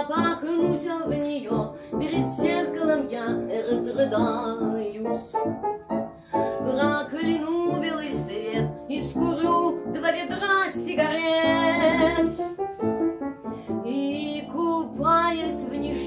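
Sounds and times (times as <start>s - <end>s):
woman singing: 0.0s - 5.5s, 6.3s - 12.4s, 13.8s - 16.0s
piano accompaniment: 0.0s - 16.0s.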